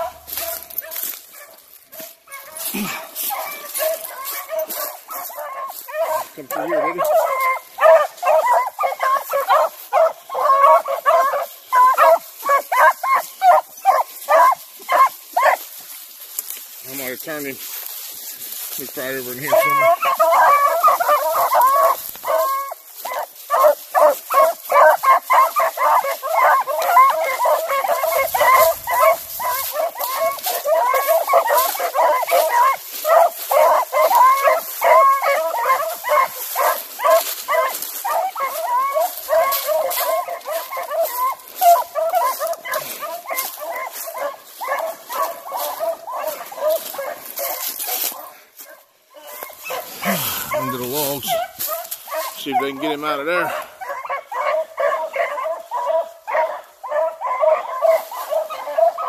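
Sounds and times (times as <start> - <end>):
dogs yipping and baying: 0.0 - 17.1, 18.0 - 59.0.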